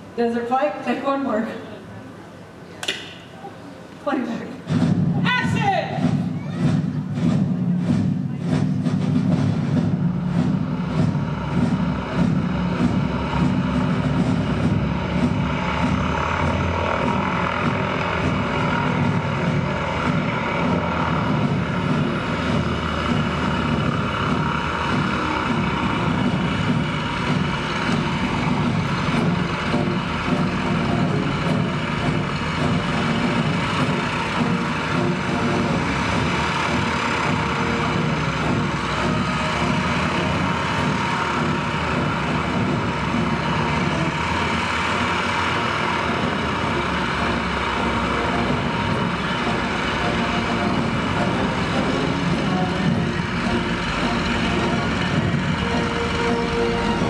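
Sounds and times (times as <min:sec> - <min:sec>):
propeller airplane engine droning: 0:06.0 - 0:57.0.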